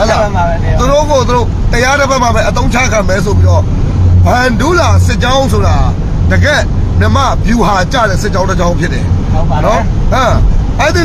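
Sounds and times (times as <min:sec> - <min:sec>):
engine and road rumble: 0:00.0 - 0:11.0
man talking: 0:00.0 - 0:11.0.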